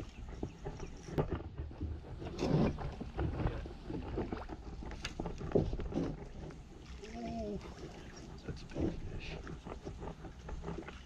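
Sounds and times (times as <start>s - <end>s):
water slapping against kayak hull: 0.0s - 11.0s
wind rumbling on microphone: 0.0s - 11.0s.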